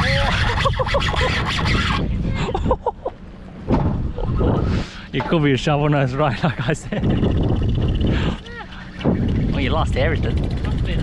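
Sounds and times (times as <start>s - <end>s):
wind buffeting microphone: 0.0s - 2.8s, 3.6s - 11.0s.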